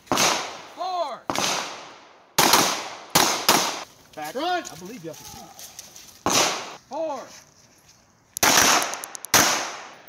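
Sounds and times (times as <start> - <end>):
pistol shots with echo: 0.1 - 0.7, 1.3 - 3.8, 6.2 - 6.8, 8.4 - 10.0.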